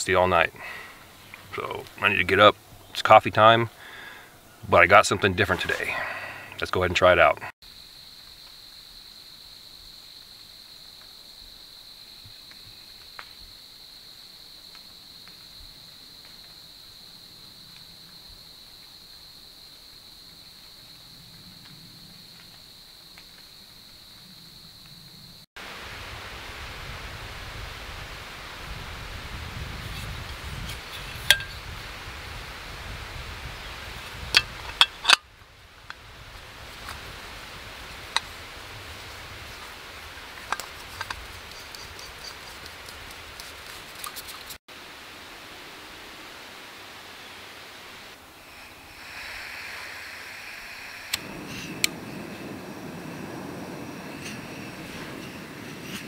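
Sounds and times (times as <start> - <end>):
wind rumble on microphone: 25.8 - 43.4, 49.1 - 56.0.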